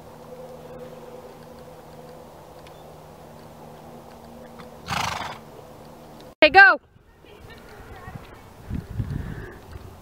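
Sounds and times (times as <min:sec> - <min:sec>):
horse snorting: 0:04.6 - 0:05.4.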